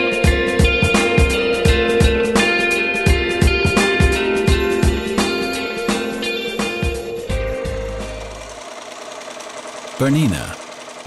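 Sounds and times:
music: 0.0s - 8.6s
sewing machine stitching: 8.1s - 11.0s.

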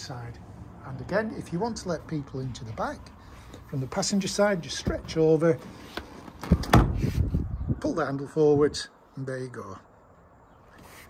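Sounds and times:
car seat sliding and rubbing: 5.0s - 7.3s.

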